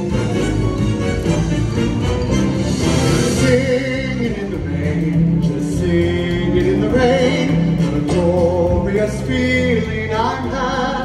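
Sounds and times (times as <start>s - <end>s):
backing music: 0.0s - 11.0s
man singing with vibrato: 2.8s - 11.0s.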